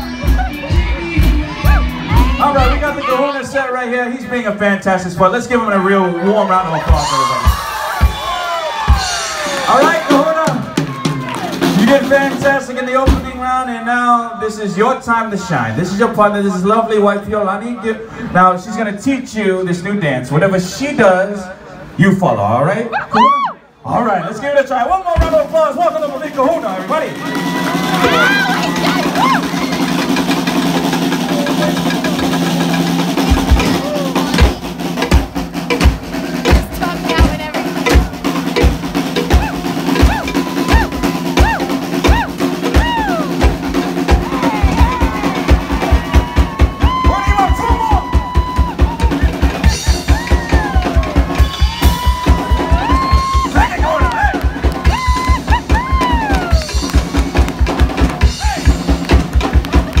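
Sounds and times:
bass drum beat: 0:00.0 - 0:03.4, 0:06.8 - 0:13.4, 0:26.4 - 1:00.0
live band music: 0:00.0 - 0:13.9, 0:25.2 - 1:00.0.

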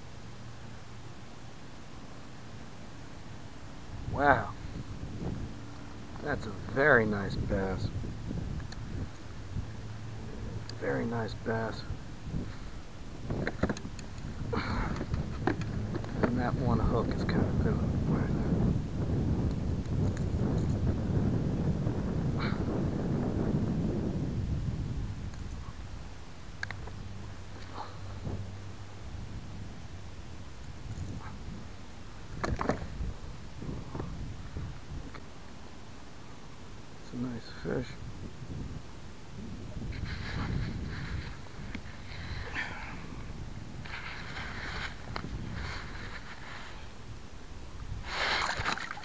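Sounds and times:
wind rumble on microphone: 0:03.2 - 0:35.9, 0:36.7 - 0:49.0
brief rustle: 0:39.9 - 0:42.6, 0:43.8 - 0:46.9.

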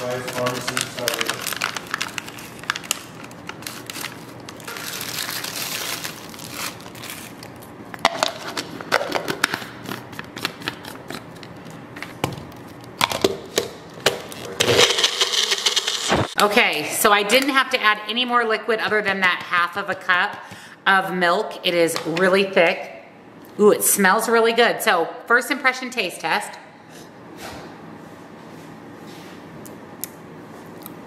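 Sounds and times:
plastic packet crinkling: 0:00.0 - 0:11.8
blender motor running: 0:14.6 - 0:16.4.

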